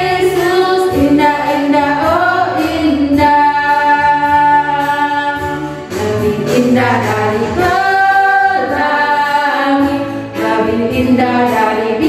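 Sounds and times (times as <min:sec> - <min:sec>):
women singing worship song: 0:00.0 - 0:12.0.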